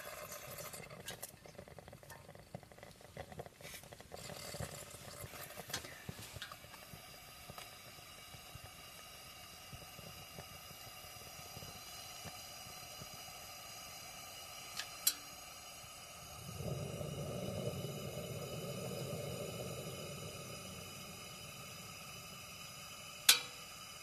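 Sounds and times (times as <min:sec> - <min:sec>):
lantern burning hiss: 0:00.0 - 0:24.0
deep rushing noise: 0:16.3 - 0:23.0.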